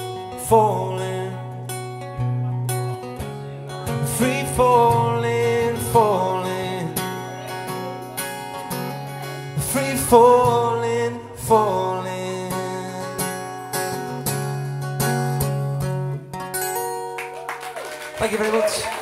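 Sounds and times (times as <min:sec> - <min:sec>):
acoustic guitar strummed: 0:00.0 - 0:17.5
person singing wordless notes: 0:03.9 - 0:13.6.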